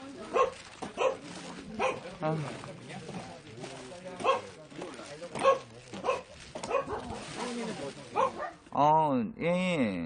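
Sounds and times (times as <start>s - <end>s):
dogs barking: 0.3s - 2.1s, 4.2s - 4.6s, 5.4s - 7.4s, 8.2s - 8.6s.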